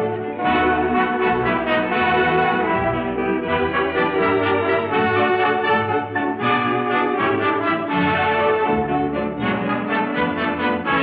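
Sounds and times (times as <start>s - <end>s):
orchestral music with brass: 0.0s - 11.0s.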